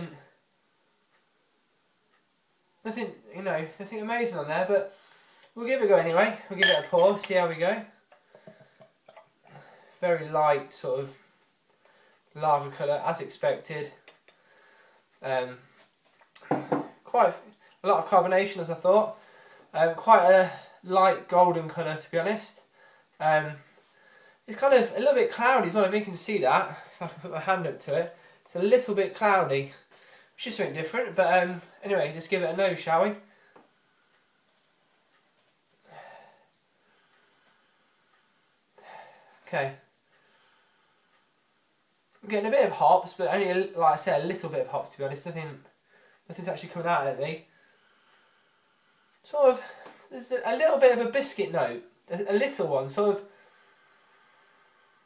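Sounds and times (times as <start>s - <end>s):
beer glugging into a glass: 6.6s - 7.3s
man breathing softly: 19.2s - 19.7s, 35.8s - 39.5s, 40.1s - 41.4s, 47.5s - 50.1s, 53.3s - 55.0s.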